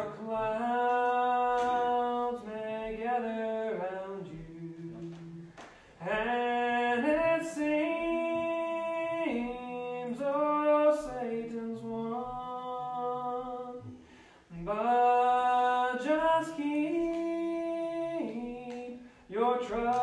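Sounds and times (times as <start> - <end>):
unaccompanied hymn singing: 0.0 - 20.0.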